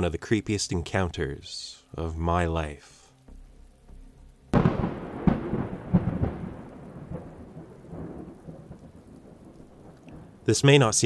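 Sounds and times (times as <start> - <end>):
thunder crack and rumble: 4.6 - 10.4.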